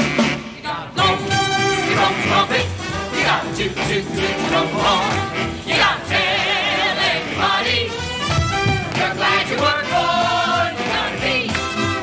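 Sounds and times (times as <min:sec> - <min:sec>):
musical accompaniment: 0:00.0 - 0:12.0.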